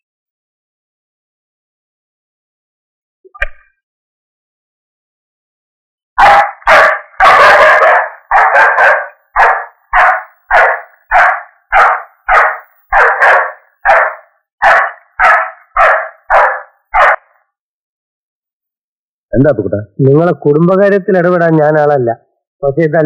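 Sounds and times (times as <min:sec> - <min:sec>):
dog barking loudly: 0:06.2 - 0:17.4.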